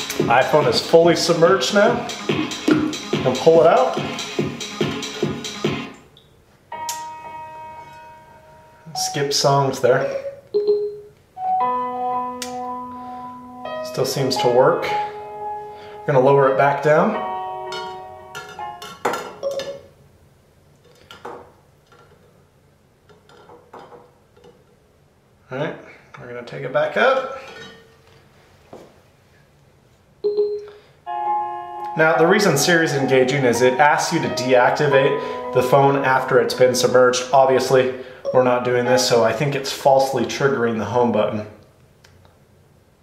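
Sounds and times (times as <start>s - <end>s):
electronic music from phone speaker: 0.0s - 6.1s, 11.4s - 18.8s, 31.1s - 39.2s
music with sustained tones: 6.7s - 9.4s, 11.4s - 19.0s, 31.1s - 38.0s.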